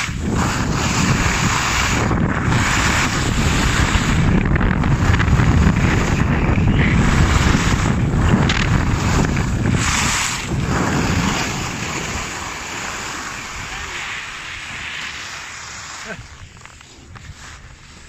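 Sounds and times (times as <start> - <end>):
skis hissing over snow: 0.0 - 18.0
wind buffeting microphone: 0.0 - 18.0.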